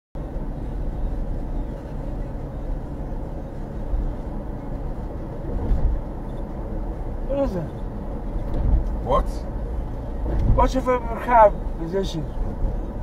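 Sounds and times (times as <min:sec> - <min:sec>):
car engine and road rumble: 0:00.2 - 0:13.0.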